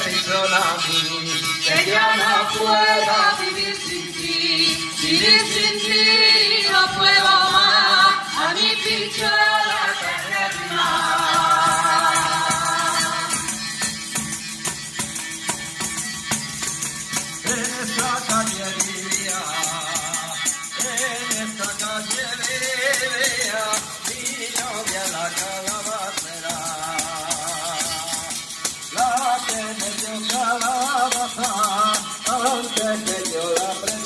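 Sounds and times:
man singing: 0.0s - 8.8s, 17.4s - 34.0s
hand percussion: 0.0s - 34.0s
tambourine struck and shaken: 0.0s - 34.0s.

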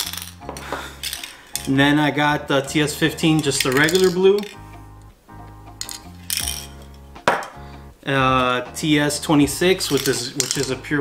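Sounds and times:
metal spray cans clinking: 0.0s - 2.0s, 2.6s - 4.7s, 5.7s - 7.6s, 9.6s - 11.0s
background music: 0.0s - 11.0s.

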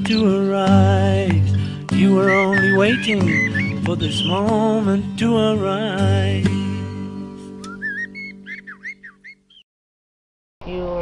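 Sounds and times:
songbird chirping: 0.0s - 6.4s, 7.1s - 9.7s.

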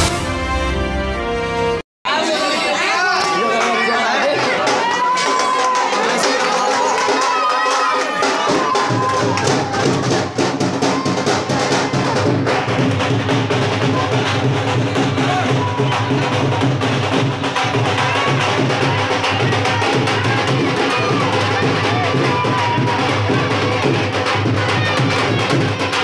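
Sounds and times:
intro music: 0.0s - 1.8s
band music: 0.0s - 3.0s
crowd talking and shouting: 2.1s - 26.0s
heavy steady drumbeat: 4.6s - 26.0s.

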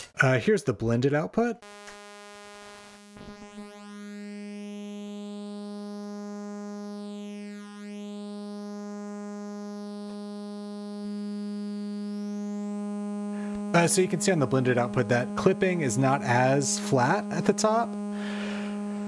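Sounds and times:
sawtooth synth tone with phaser: 1.6s - 19.0s.

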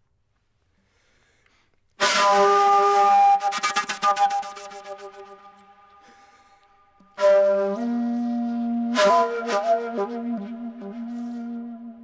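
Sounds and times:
breathy wind instrument note: 0.8s - 12.0s.

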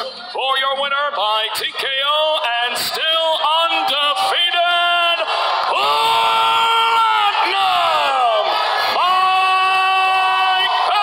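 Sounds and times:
crowd noise: 0.0s - 11.0s
man yelling victory cries: 3.0s - 11.0s.

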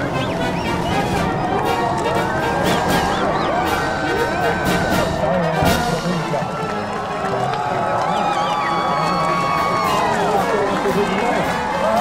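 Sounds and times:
orchestral music led by brass: 0.0s - 7.0s, 9.2s - 12.0s.

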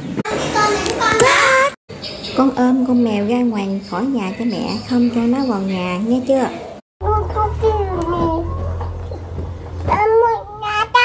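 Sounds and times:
steady low hum: 7.0s - 11.0s.

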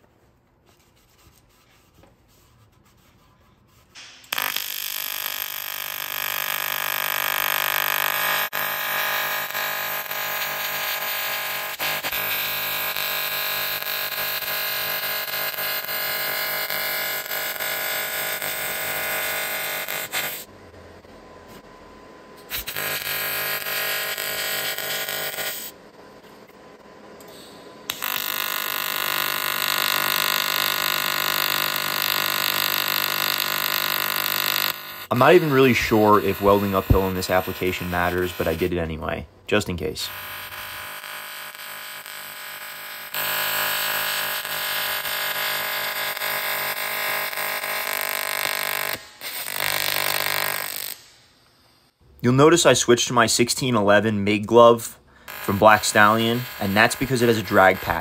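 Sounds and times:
welding arc buzzing: 4.0s - 20.5s, 22.4s - 52.0s, 55.2s - 58.0s.

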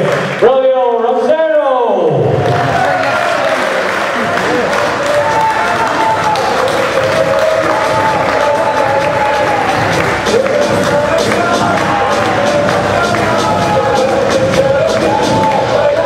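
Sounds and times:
man's voice: 0.0s - 2.5s, 4.1s - 16.0s
audience applauding and cheering: 2.3s - 16.0s.

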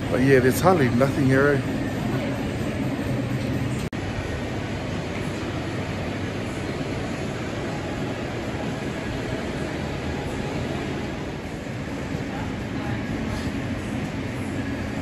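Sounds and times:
refrigerator cooling fans: 0.0s - 15.0s
ventilation rumble: 0.0s - 15.0s.

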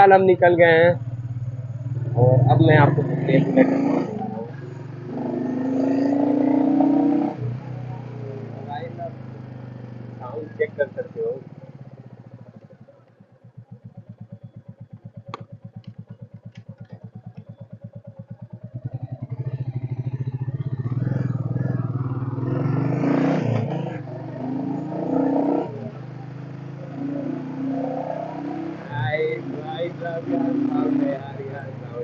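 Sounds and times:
motorcycle engine thumping: 0.9s - 27.6s.

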